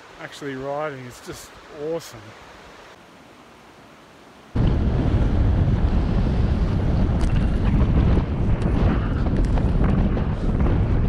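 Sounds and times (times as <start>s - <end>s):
wind buffeting microphone: 4.6s - 11.0s.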